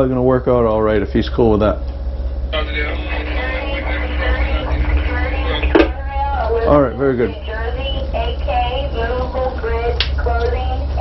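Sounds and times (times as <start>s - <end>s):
boat engines droning: 0.0s - 11.0s
radio hum: 2.5s - 11.0s
voice over two-way radio: 2.6s - 5.9s.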